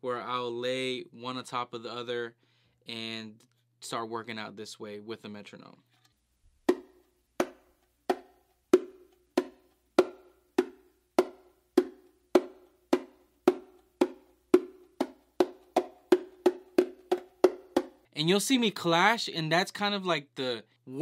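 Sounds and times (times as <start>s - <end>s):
bongo slaps: 6.7s - 18.0s.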